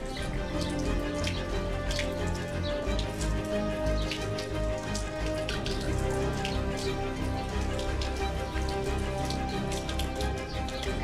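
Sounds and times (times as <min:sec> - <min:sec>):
soft music with long held tones: 0:00.0 - 0:11.0
water running from tap and splashing: 0:00.0 - 0:11.0.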